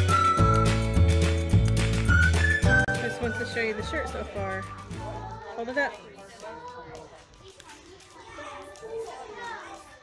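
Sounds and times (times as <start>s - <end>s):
chatter of children and adults: 3.6s - 10.0s.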